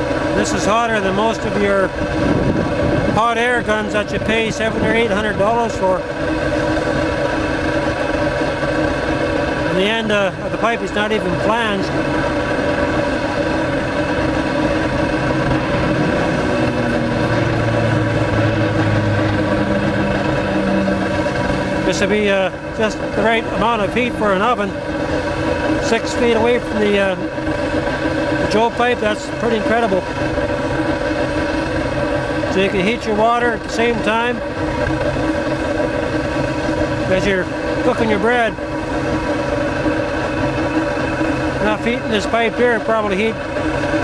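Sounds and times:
deeper hum: 0:00.0 - 0:44.0
heater flame roaring: 0:00.0 - 0:44.0
hot exhaust blowing: 0:00.0 - 0:44.0.

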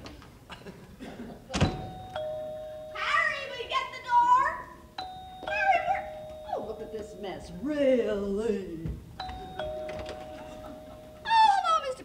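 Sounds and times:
two-note doorbell chime: 0:01.7 - 0:03.6, 0:05.0 - 0:07.6, 0:09.2 - 0:11.7.

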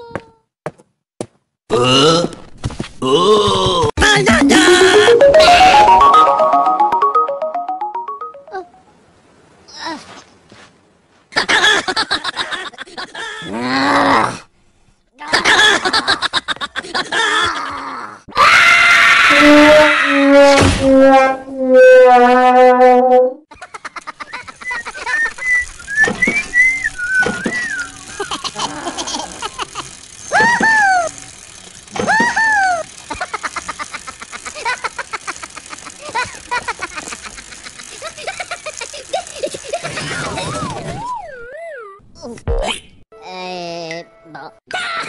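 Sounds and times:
loud cartoon vocal cry: 0:04.0 - 0:06.0, 0:17.4 - 0:20.3, 0:28.1 - 0:29.7
held notes stepping down: 0:04.4 - 0:08.8
rapid ticking: 0:23.8 - 0:39.8
whistled calls: 0:24.6 - 0:28.3.

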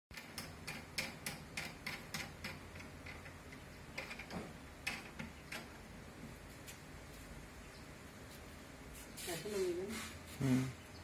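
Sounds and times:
small hard parts clicking: 0:00.1 - 0:05.9.

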